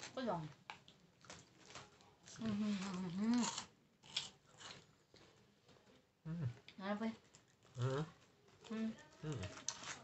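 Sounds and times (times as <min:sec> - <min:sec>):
chewing crisp snack: 0:00.0 - 0:05.5, 0:07.2 - 0:10.0.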